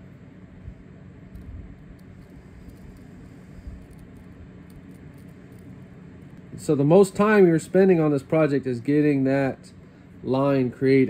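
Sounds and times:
air conditioning hum: 0.0 - 11.0.

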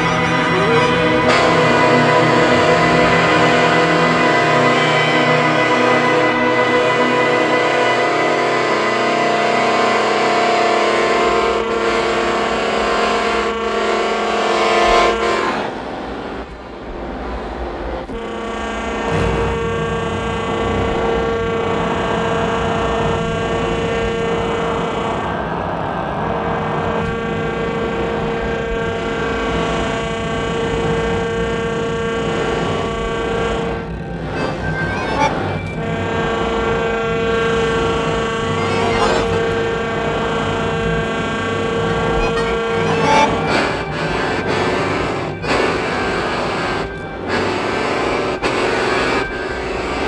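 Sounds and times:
droning chamber music: 0.0 - 50.0.

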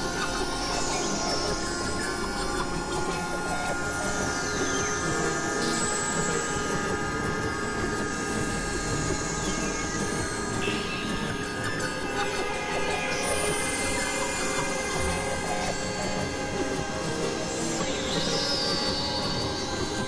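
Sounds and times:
experimental electronic drone music: 0.0 - 20.0.

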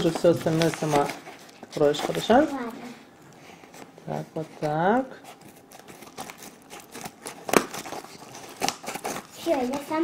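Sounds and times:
plastic bag crinkling: 0.0 - 2.7, 5.4 - 10.0
scissors snipping plastic bag: 5.7 - 9.9.

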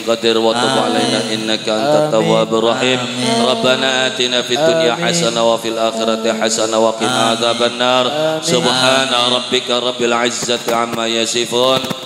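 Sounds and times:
man chanting prayer over loudspeaker: 0.0 - 12.0.

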